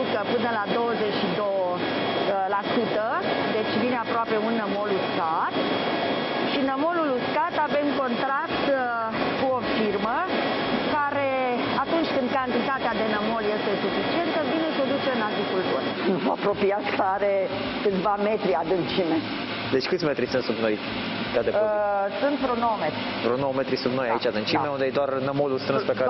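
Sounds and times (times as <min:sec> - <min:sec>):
people talking: 0:00.0 - 0:05.5, 0:06.6 - 0:10.3, 0:10.9 - 0:19.2, 0:21.4 - 0:26.0.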